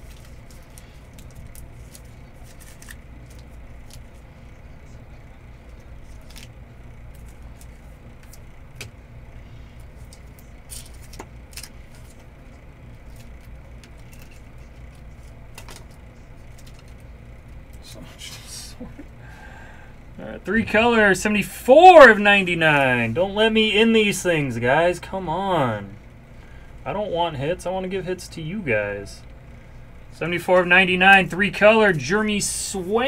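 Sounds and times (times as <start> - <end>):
cards clicking and flicking: 0.0 - 4.2, 5.7 - 9.0, 9.8 - 12.3, 12.9 - 17.1
steady low hum: 0.0 - 33.0.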